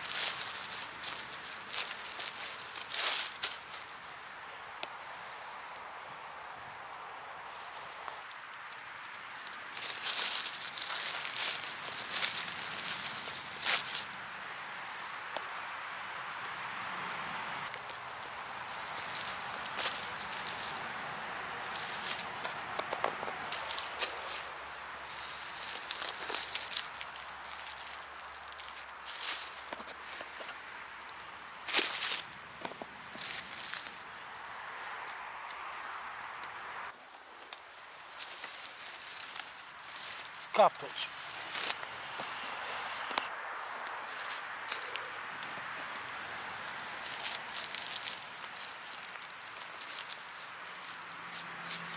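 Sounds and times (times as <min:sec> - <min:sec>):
footsteps on dry leaves and twigs: 0:00.0 - 0:51.9.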